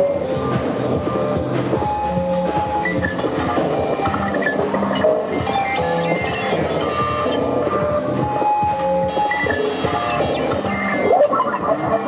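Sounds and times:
electronic noise music: 0.0s - 12.0s.

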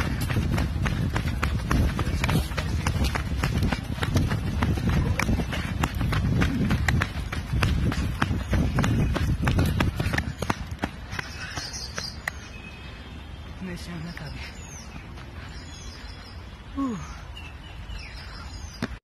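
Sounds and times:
running footsteps on dirt trail: 0.0s - 16.5s.

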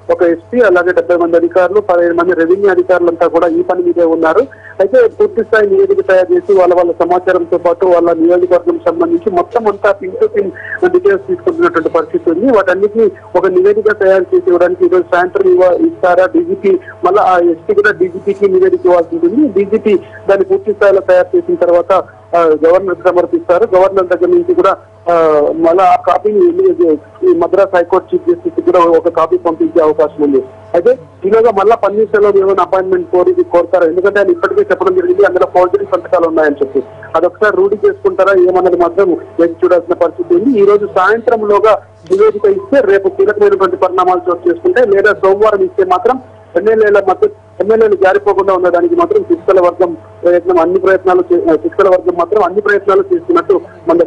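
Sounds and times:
faint low hum: 0.0s - 54.0s
person talking: 0.0s - 54.0s
reporter speaking: 0.0s - 54.0s.

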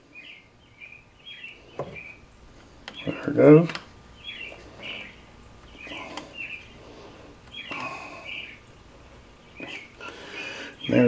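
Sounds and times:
bird chirping: 0.0s - 6.8s, 7.5s - 11.0s.

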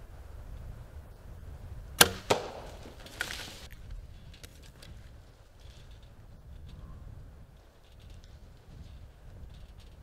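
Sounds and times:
arrow hitting smack: 2.0s - 3.6s.

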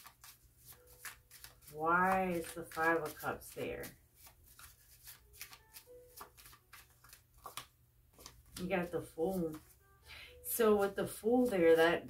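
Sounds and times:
cards being shuffled: 0.0s - 9.8s.

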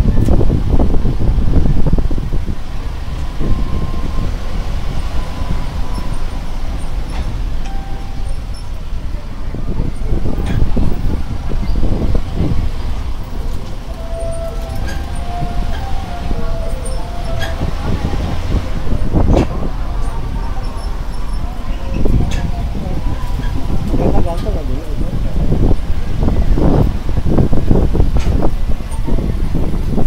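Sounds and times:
tram bus driving rumble: 0.0s - 30.0s.

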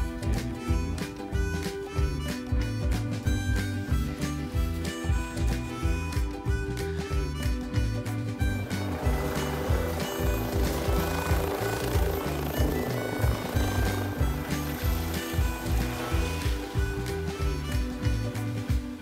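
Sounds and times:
music with bass beat: 0.0s - 19.0s
helicopter rotor noise: 7.0s - 19.0s.

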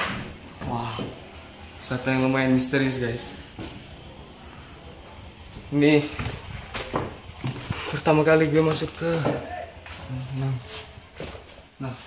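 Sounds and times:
footsteps: 0.0s - 12.0s
knocks and scuffs: 5.5s - 12.0s.

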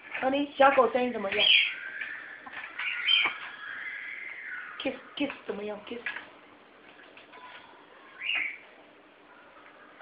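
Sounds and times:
parrot whistle rising and falling: 1.4s - 4.8s.

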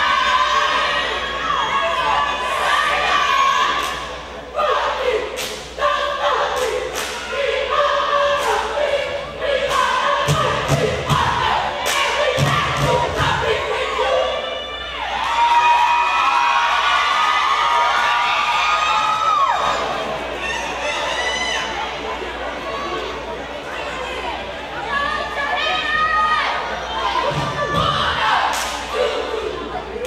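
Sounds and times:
cheerleaders chanting and yelling: 0.0s - 30.0s.

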